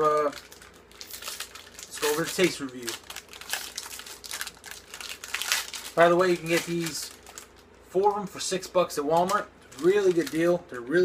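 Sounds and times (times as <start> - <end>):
plastic wrapper crinkling: 0.0 - 7.8, 8.6 - 10.9.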